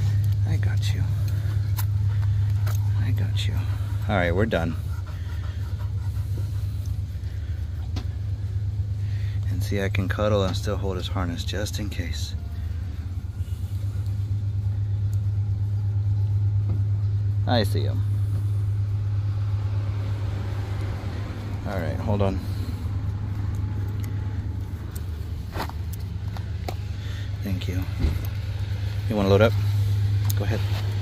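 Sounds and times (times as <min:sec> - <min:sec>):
car engine idling: 0:00.0 - 0:31.0
motor vehicle rumbling: 0:00.0 - 0:31.0.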